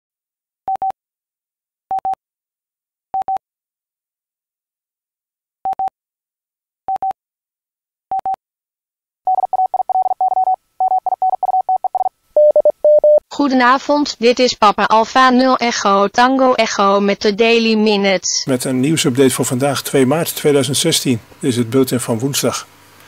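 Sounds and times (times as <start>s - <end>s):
morse code beeps: 6.9s - 7.2s, 8.1s - 8.4s, 9.3s - 13.2s.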